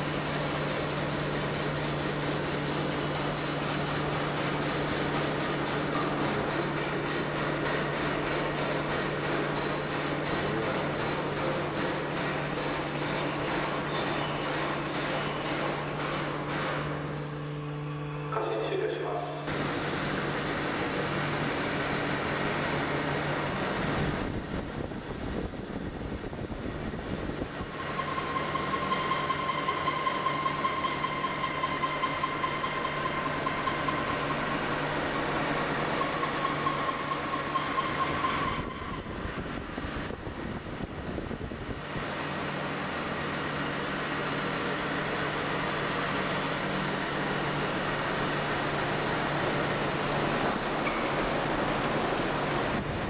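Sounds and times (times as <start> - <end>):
steady machine hum: 0.0 - 53.0.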